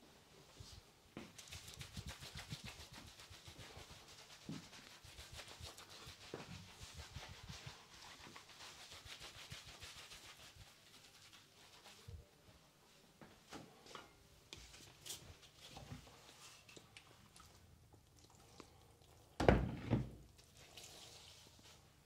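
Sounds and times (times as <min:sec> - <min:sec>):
sponge scrubbing soapy face: 0:01.3 - 0:12.2, 0:20.2 - 0:22.0.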